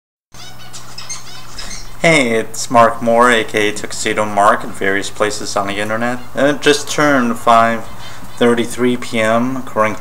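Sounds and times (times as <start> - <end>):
birds chirping: 0.4 - 10.0
steady low hum: 0.7 - 10.0.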